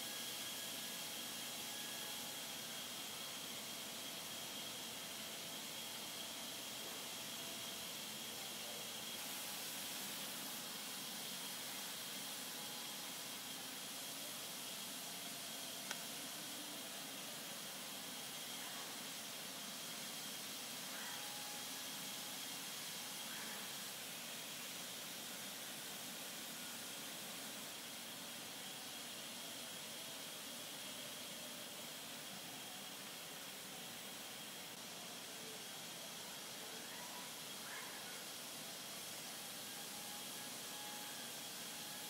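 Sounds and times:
faint high whine: 0:00.0 - 0:42.0
hiss of moving air: 0:00.0 - 0:42.0.

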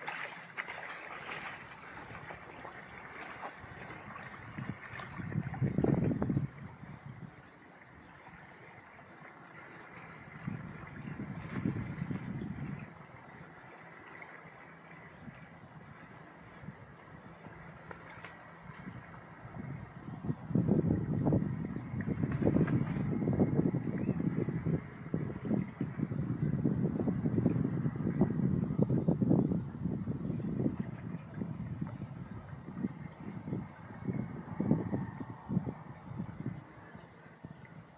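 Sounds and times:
wind buffeting microphone: 0:00.0 - 0:37.9.

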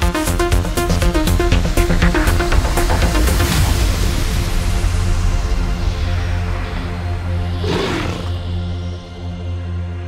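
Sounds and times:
music holding low chord: 0:00.0 - 0:10.0
big cat roaring: 0:07.6 - 0:08.4.

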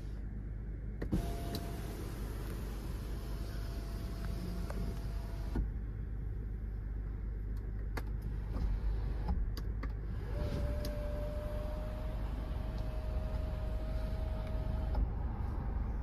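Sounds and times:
sunroof motor whining: 0:01.1 - 0:05.7, 0:10.1 - 0:15.2.

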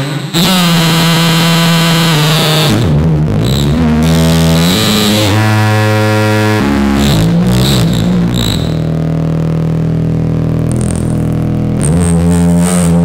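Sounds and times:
buzzy synthesizer notes: 0:00.0 - 0:13.0.

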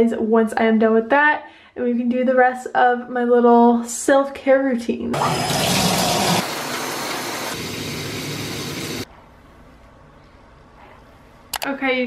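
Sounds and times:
shower water spraying: 0:05.2 - 0:09.1.

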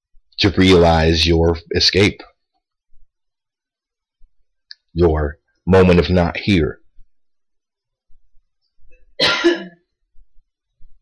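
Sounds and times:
man coughing: 0:09.2 - 0:09.9.

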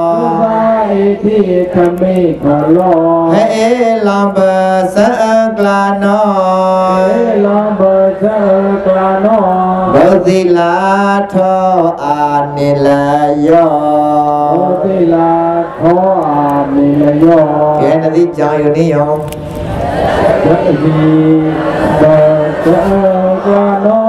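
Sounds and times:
person chanting in held notes: 0:00.0 - 0:19.2, 0:20.2 - 0:24.0.

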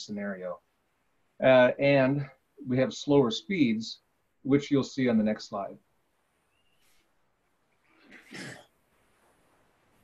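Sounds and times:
person clearing throat: 0:08.1 - 0:08.7.

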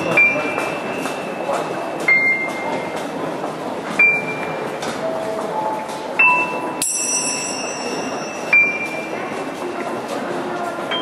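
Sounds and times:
bell-like struck notes: 0:06.2 - 0:09.0.

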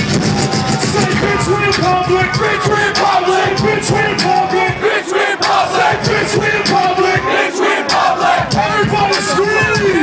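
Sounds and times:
concert crowd yelling: 0:00.0 - 0:10.0.

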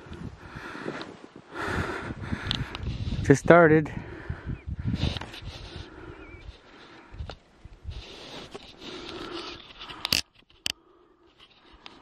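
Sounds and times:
hands scraping snowy brush: 0:07.9 - 0:10.1.

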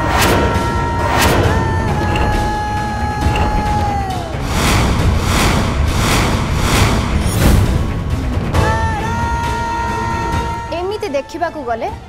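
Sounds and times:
deep steady rumble: 0:00.4 - 0:08.6
whooshing swishes: 0:03.3 - 0:08.5.

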